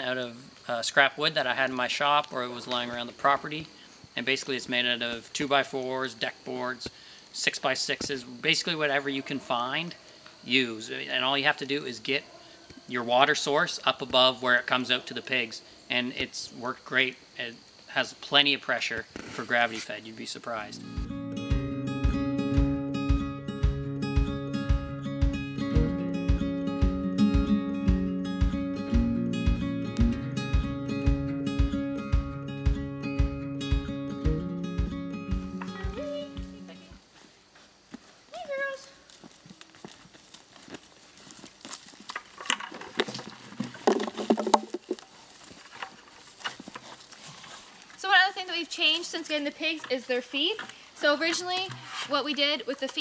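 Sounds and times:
acoustic folk music: 20.6 - 37.0.

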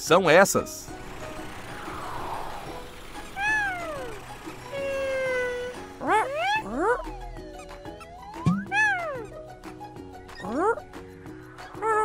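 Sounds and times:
soft background music: 0.0 - 12.0
falling swoosh: 1.2 - 5.2
squeaky cartoon calls: 3.3 - 9.5, 10.3 - 10.8.

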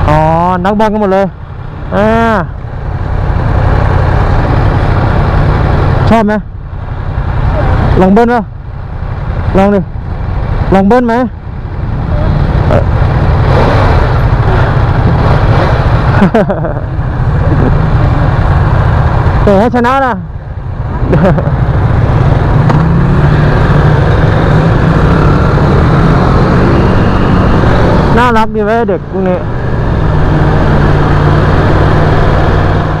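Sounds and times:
motorcycle engine revving: 0.0 - 33.0
road and wind noise: 0.0 - 33.0.

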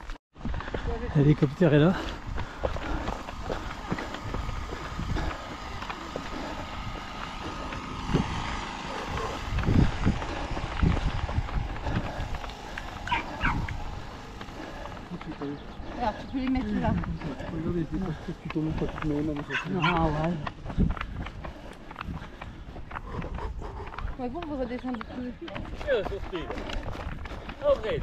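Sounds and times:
runner's footfalls on dirt trail: 0.0 - 28.0
wind rumbling on microphone: 0.0 - 28.0
distant voices: 0.6 - 28.0.

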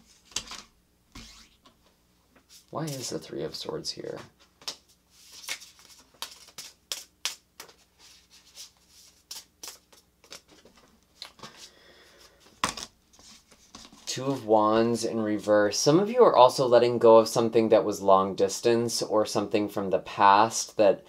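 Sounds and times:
cards clicking and rustling: 0.2 - 1.3, 4.6 - 11.6.

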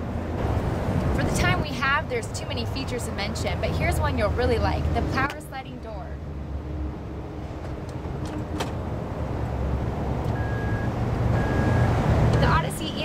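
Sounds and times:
short beeps: 10.3 - 12.7.

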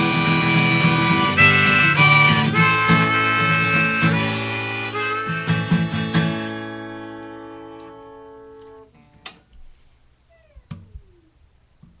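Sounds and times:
acoustic guitar chord ringing: 0.0 - 9.2
quiet knocks and handling noises: 10.5 - 11.2.

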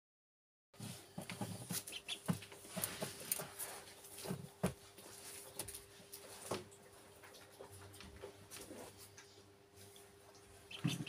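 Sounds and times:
ducklings pecking grains: 1.1 - 11.0
duckling peeping: 1.7 - 2.4, 10.4 - 11.0.

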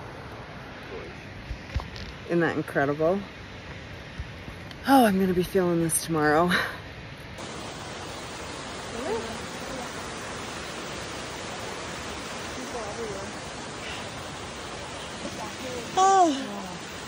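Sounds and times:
creek rushing over rocks: 7.4 - 17.0.

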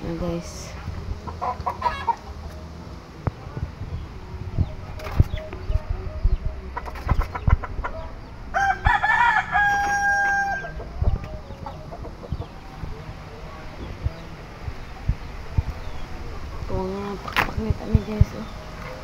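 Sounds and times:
rooster crowing: 8.5 - 10.9.

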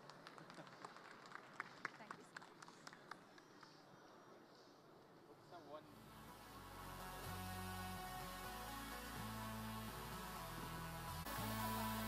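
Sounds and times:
scattered hand clapping: 0.0 - 3.8.

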